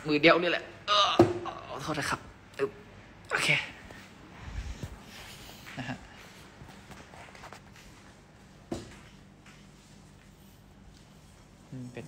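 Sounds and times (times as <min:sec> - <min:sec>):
person speaking: 0:11.6 - 0:12.0.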